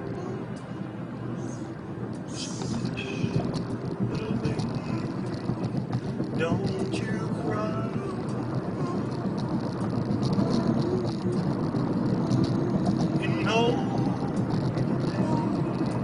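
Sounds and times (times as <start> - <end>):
car road noise: 0.0 - 16.0
faint car stereo music: 0.0 - 16.0.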